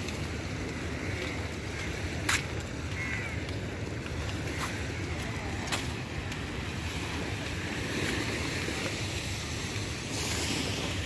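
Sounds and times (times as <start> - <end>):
sea washing on a beach: 0.0 - 11.0.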